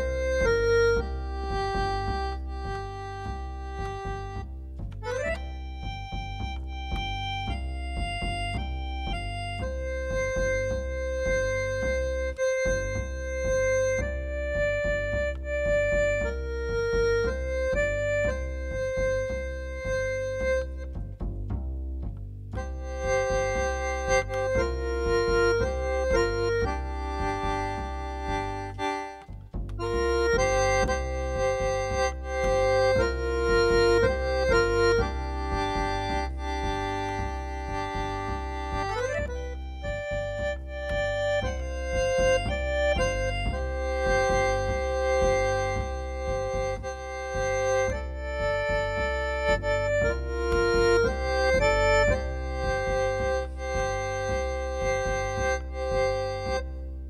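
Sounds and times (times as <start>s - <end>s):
piano accordion playing: 0.0s - 21.0s, 22.6s - 57.0s.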